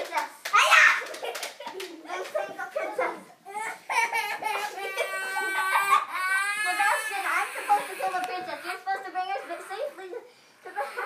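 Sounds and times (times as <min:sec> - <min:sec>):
children's voices: 0:00.0 - 0:11.0
young child wailing: 0:04.8 - 0:08.7.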